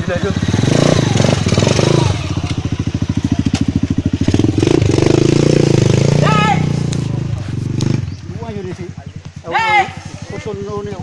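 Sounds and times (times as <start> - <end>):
dirt bike engine running: 0.0 - 11.0.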